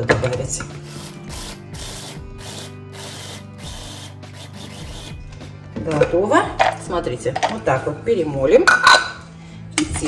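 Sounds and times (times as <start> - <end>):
electric chopper grinding nuts: 0.9 - 5.2.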